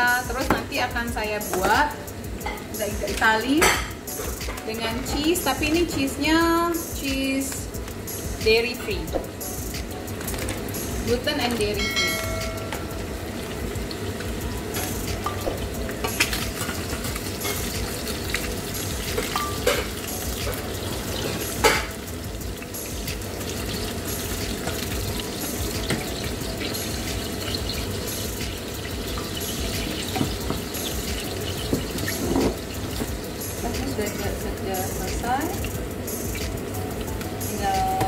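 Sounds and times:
food sizzling in pans: 0.0s - 38.0s
utensils clinking on pans: 1.5s - 6.2s, 10.4s - 13.0s, 14.7s - 22.2s, 22.8s - 35.5s.

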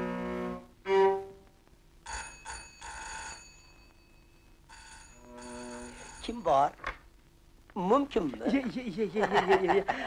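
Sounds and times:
electric doorbell ringing: 2.1s - 6.5s.

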